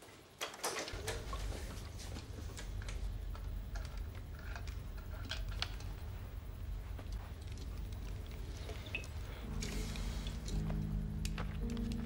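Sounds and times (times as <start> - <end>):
steady low rumble: 1.0 - 12.0.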